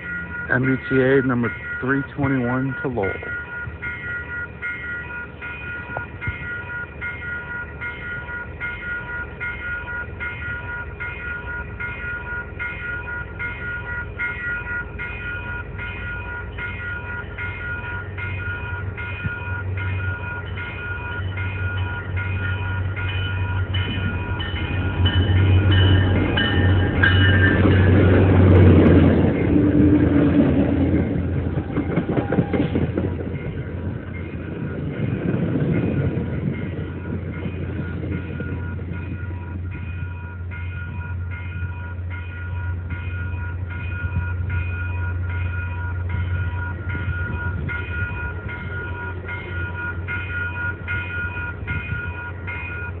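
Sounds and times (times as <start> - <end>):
crossing bell dinging: 0.0 - 53.0
train rumbling by: 0.0 - 53.0
train horn: 31.6 - 32.8.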